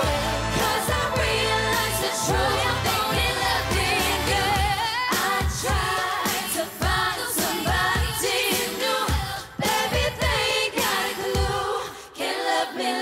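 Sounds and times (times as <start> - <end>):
bass-heavy pop beat: 0.0 - 11.6
female vocal group singing: 0.0 - 13.0.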